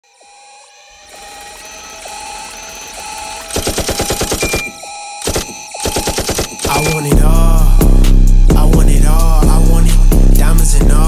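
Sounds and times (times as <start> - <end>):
sustained synth chords: 0.0 - 6.2
rapid stuttering hits: 1.4 - 9.0.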